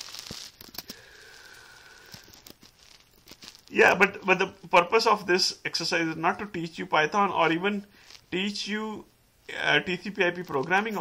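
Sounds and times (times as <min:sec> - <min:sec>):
light hiss: 0:00.0 - 0:11.0.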